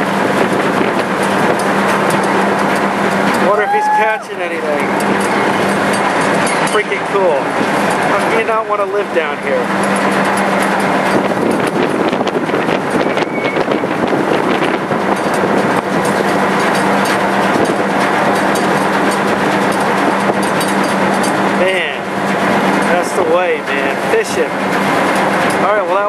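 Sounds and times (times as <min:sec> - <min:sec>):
ferry engines droning: 0:00.0 - 0:26.0
wind noise on microphone: 0:00.0 - 0:26.0
voices: 0:03.3 - 0:09.8, 0:22.8 - 0:24.6.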